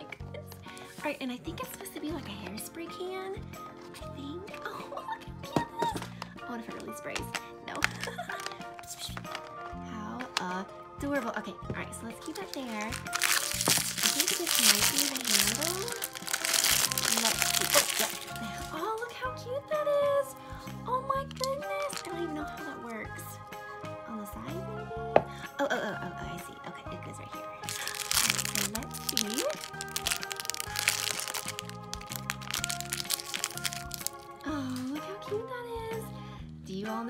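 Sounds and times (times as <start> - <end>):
background music: 0.0 - 37.0
plastic wrapper crinkling: 7.2 - 10.5, 12.2 - 19.2, 21.2 - 22.2, 27.6 - 35.0.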